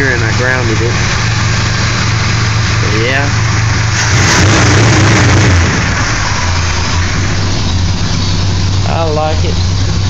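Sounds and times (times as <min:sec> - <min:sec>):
pickup truck engine idling: 0:00.0 - 0:10.0.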